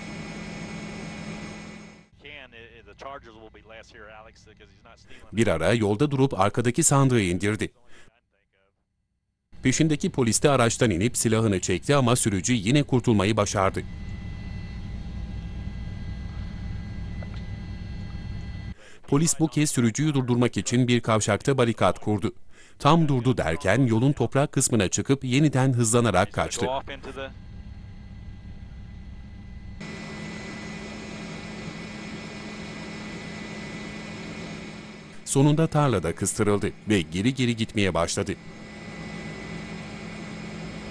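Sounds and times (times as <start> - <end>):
helicopter engine and rotors: 0.0 - 2.1, 9.6 - 18.8, 26.3 - 40.9.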